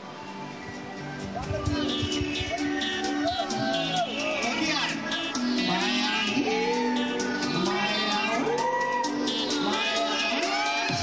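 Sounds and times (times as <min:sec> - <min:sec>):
karaoke backing music: 0:00.0 - 0:11.0
man singing with helium voice effect: 0:04.4 - 0:11.0.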